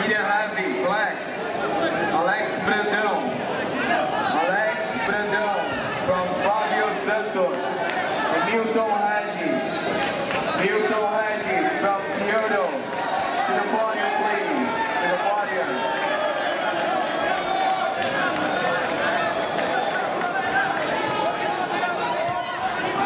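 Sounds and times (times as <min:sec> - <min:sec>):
crowd talking and calling out: 0:00.0 - 0:23.0.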